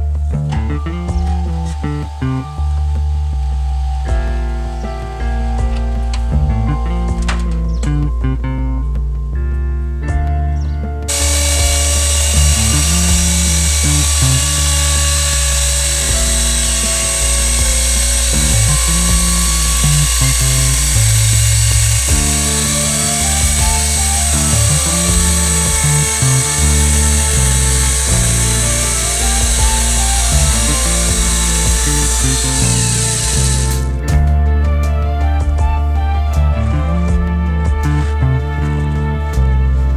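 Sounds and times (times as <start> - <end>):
background music: 0.0 - 39.9
electric chainsaw cutting log: 0.9 - 4.7, 11.1 - 33.9.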